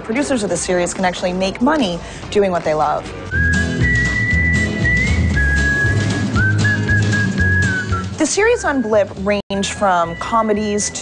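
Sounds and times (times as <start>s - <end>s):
steady beat: 3.3s - 8.4s
whistled tune: 3.3s - 9.1s
bass line: 3.3s - 9.4s.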